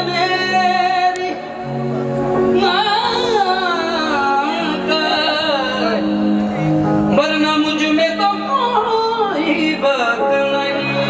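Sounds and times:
man singing into a microphone: 0:00.0 - 0:01.7, 0:02.6 - 0:11.0.

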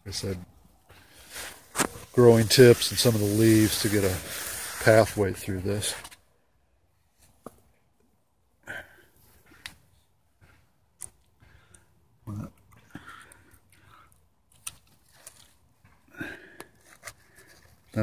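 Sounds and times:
rustling leaves and vines: 0:00.9 - 0:06.2, 0:14.5 - 0:18.0.

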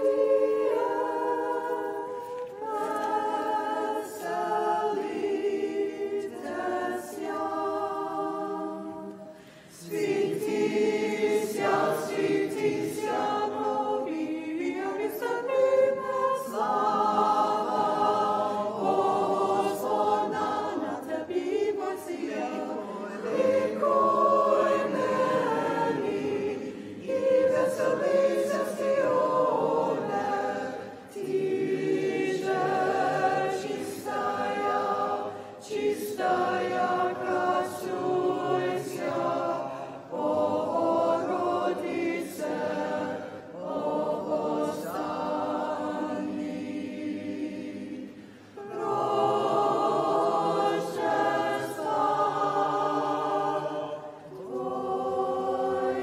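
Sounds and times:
group singing a cappella chant: 0:00.0 - 0:56.0.

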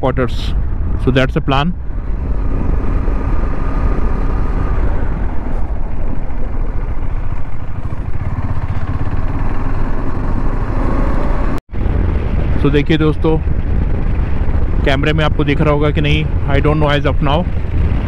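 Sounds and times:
wind on microphone: 0:00.0 - 0:18.0
motorcycle engine: 0:01.7 - 0:18.0.

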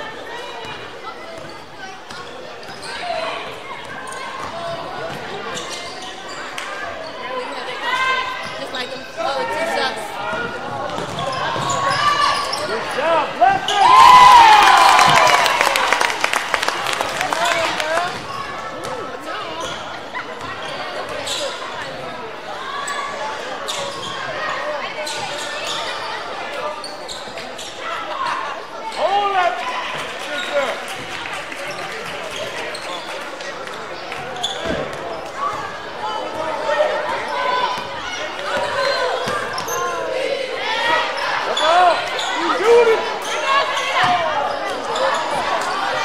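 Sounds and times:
people shouting: 0:13.4 - 0:15.5.

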